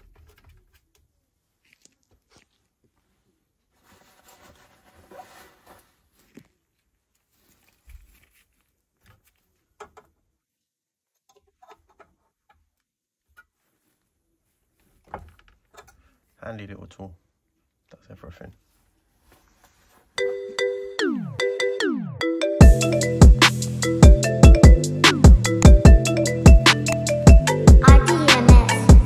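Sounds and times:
gloved hands rustling: 1.3s - 9.8s, 18.4s - 20.6s.

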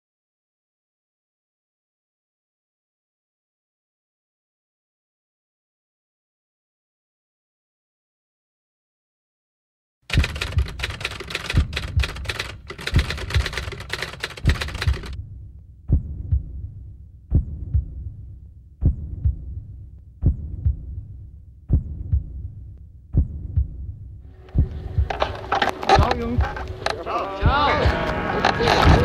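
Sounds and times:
dense rapid clicking: 10.1s - 15.2s
deep heartbeat thumps: 10.1s - 29.0s.

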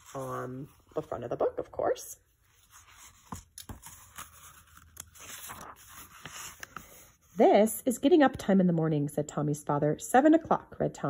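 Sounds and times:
paper rustling: 2.5s - 7.4s
paper crackles: 2.6s - 7.2s.

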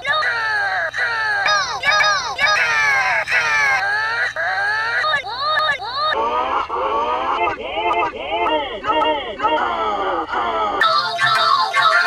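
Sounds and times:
distorted pitched-up cartoon voice: 0.0s - 12.0s.

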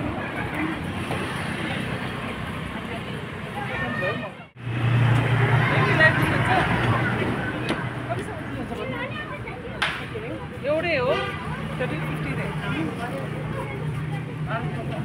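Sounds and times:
people chattering: 0.0s - 15.0s
voices nearby: 0.0s - 15.0s
car driving past: 4.6s - 7.8s.

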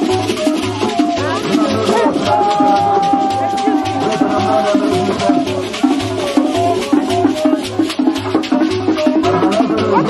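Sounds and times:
bass drum beat: 0.0s - 10.0s
shaker: 0.0s - 10.0s
upbeat live band music: 0.0s - 10.0s.

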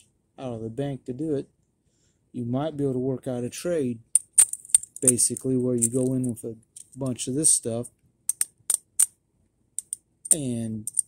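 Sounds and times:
coins clinking together: 4.2s - 7.0s, 8.3s - 9.1s, 9.8s - 11.0s.

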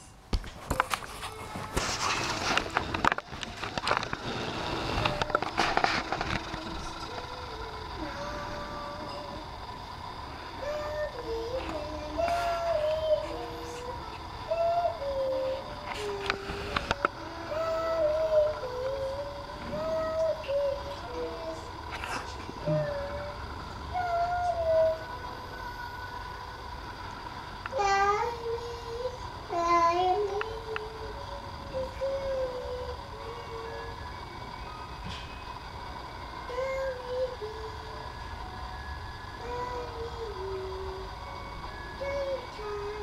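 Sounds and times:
toddler singing without words: 6.2s - 9.6s, 10.6s - 26.1s, 27.7s - 34.0s, 36.5s - 38.0s, 39.4s - 41.2s, 42.0s - 43.0s.

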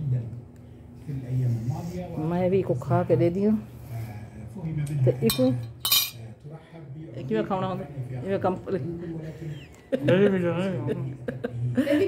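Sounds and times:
tableware clinking: 5.3s - 6.2s.

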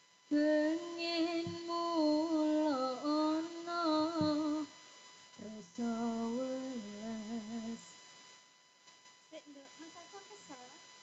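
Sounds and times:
person singing through microphone: 0.3s - 4.7s, 5.4s - 7.9s.

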